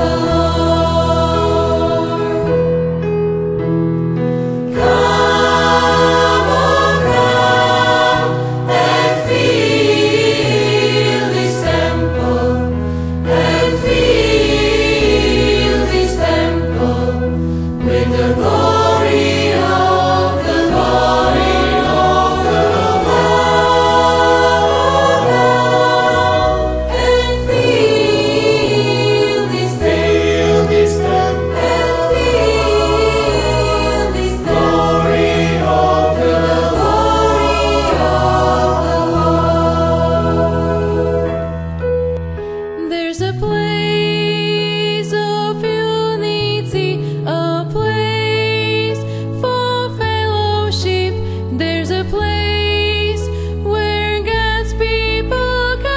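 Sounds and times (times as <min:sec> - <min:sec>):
church choir singing: 0:00.0 - 0:03.2, 0:04.4 - 0:42.4.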